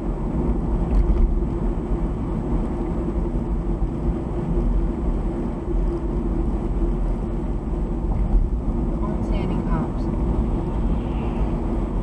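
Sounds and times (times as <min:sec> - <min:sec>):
car road and engine noise: 0:00.0 - 0:12.0.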